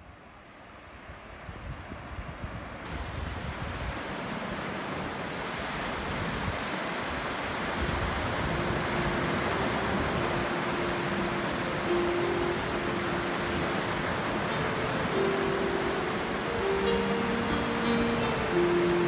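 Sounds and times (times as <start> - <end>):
wind on the microphone: 1.1 - 11.9
surf washing onto a beach: 2.9 - 19.0.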